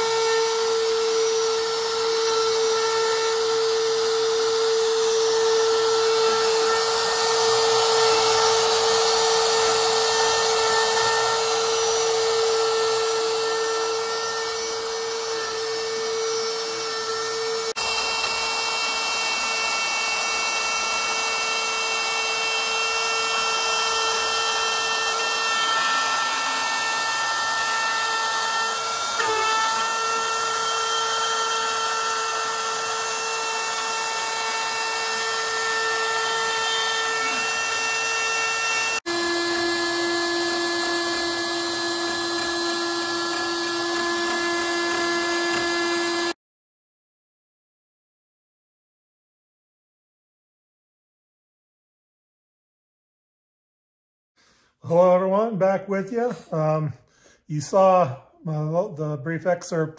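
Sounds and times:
milling machine spindle whine: 0:03.8 - 0:46.4.

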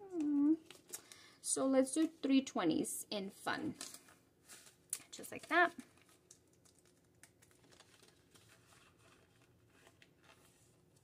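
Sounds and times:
banknotes rustling: 0:03.8 - 0:11.0.

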